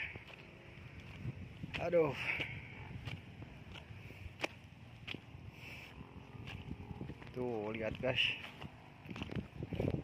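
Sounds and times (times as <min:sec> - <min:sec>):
footsteps crunching on stony dirt: 0:00.0 - 0:10.0.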